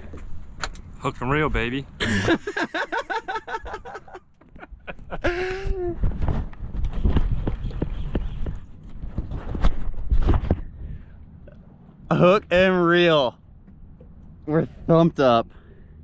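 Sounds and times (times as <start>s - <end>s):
people laughing: 2.0s - 5.9s
camera handling rumble and knocks: 4.4s - 10.8s.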